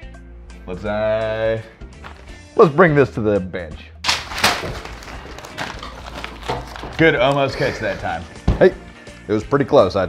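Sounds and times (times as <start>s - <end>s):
paper bundle thumping onto a bench: 4.1s - 7.2s
papers rustling: 4.1s - 8.8s.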